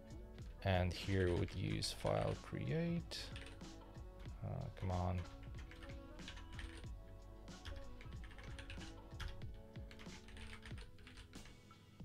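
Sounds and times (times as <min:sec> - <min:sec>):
typing on computer keyboard: 0:03.3 - 0:03.6, 0:04.2 - 0:06.9, 0:07.6 - 0:11.6.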